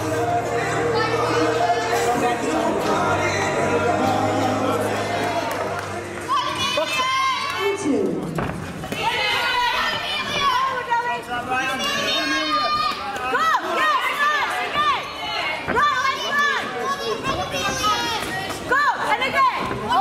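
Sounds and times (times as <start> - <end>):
music: 0.0 - 8.2
spectators shouting and cheering: 0.0 - 20.0.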